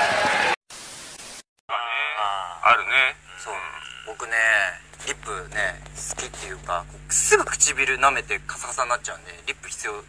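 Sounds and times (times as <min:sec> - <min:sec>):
voices talking: 0:01.7 - 0:10.0
low steady hum: 0:02.0 - 0:10.0.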